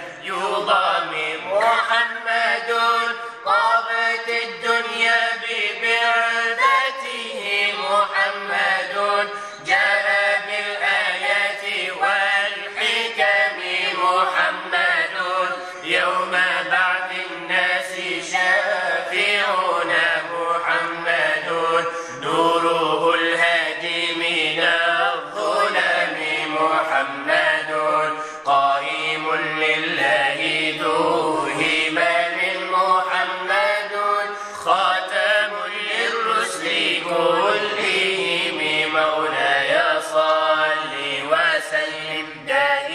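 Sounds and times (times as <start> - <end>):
person chanting ornamented melody: 0.0 - 42.9.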